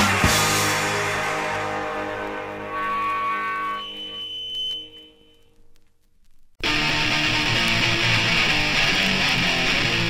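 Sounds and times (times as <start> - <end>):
punk song final chord ringing: 0.0 - 4.1
electric guitar feedback whine: 0.2 - 5.6, 6.6 - 10.0.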